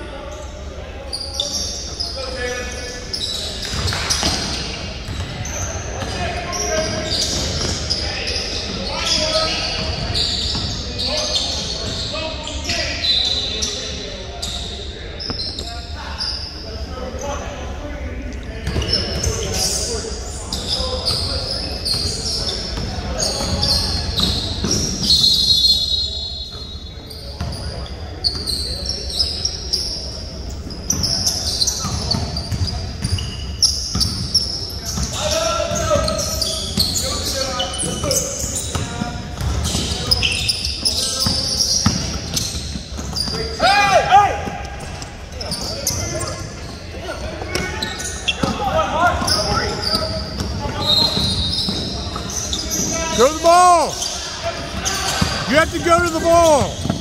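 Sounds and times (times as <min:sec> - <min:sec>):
sneaker squeaks: 0:00.2 - 0:17.6, 0:18.6 - 0:57.0
players calling out: 0:47.1 - 0:57.0
basketball bouncing: 0:56.0 - 0:57.0.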